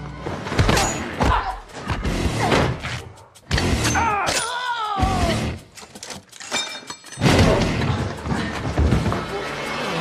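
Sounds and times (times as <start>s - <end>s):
loud film music: 0.0s - 6.0s, 7.2s - 10.0s.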